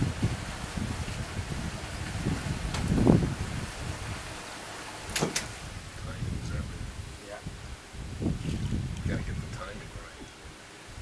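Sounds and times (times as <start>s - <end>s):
wind buffeting microphone: 0.0s - 11.0s
sharp snap: 5.1s - 5.6s.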